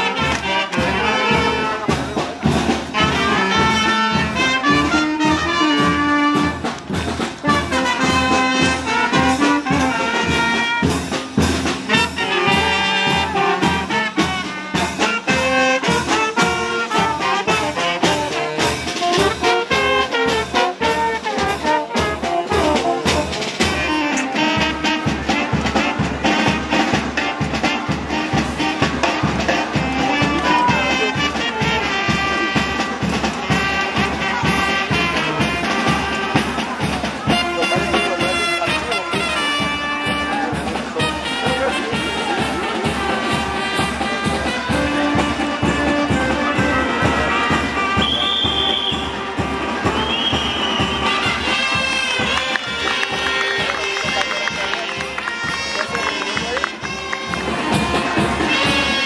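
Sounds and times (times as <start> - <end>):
brass band music: 0.0 - 59.0.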